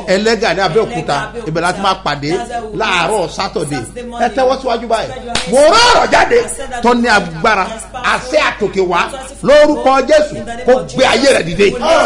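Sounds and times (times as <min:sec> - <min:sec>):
man speaking animatedly: 0:00.0 - 0:12.0
sharp hand slap: 0:05.3 - 0:05.6.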